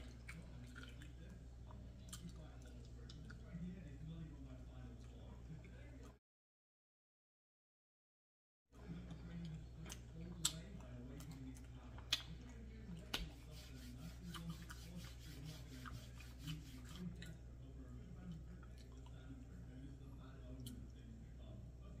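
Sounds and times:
person chewing food: 0.0 - 3.4, 8.9 - 17.4
steady low hum: 8.8 - 22.0
mouth clicks and smacks: 12.0 - 12.4.

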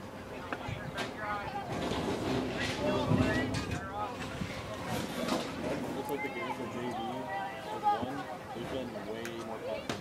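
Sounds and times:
wind rumble on microphone: 0.6 - 5.9
distant shouts and calls: 2.4 - 10.0.

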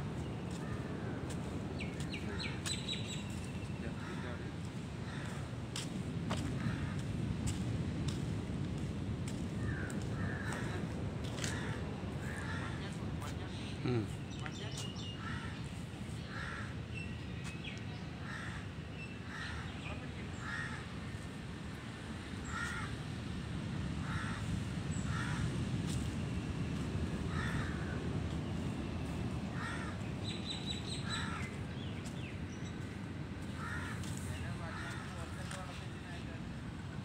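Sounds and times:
steady low rumble: 0.0 - 37.0
harsh bird calls: 27.1 - 35.4.

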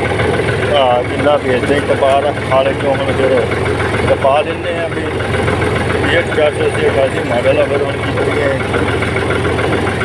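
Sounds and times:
tractor diesel engine running: 0.0 - 10.0
person's voice: 0.7 - 3.5, 4.1 - 5.2, 6.0 - 8.8.

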